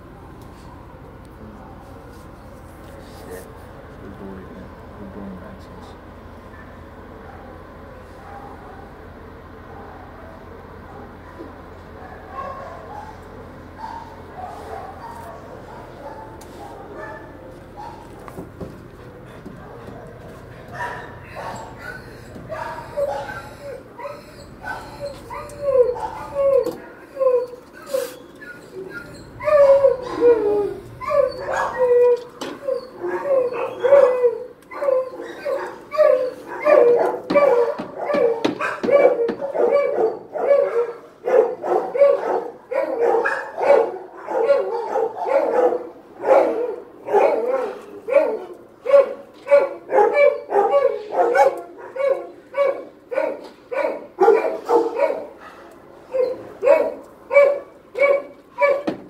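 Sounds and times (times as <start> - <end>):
dog barking and yipping: 12.0 - 13.2, 13.8 - 18.3, 19.6 - 59.0.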